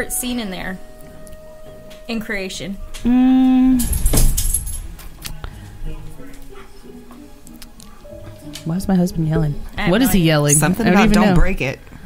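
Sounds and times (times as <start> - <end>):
clinking jangling: 3.8 - 5.0.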